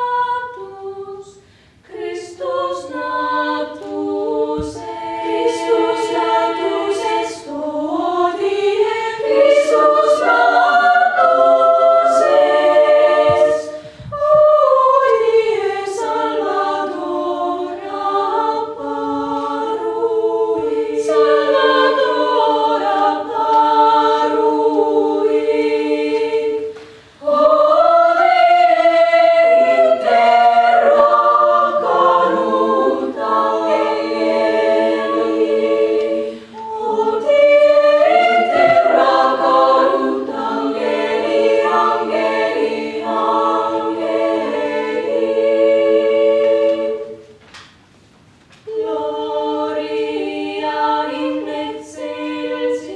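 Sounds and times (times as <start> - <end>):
girls' choir singing a cappella: 0.0 - 47.8, 48.6 - 52.9.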